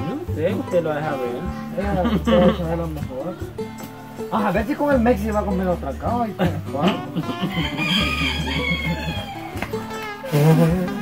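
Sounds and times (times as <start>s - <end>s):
rooster crowing: 7.5s - 9.8s.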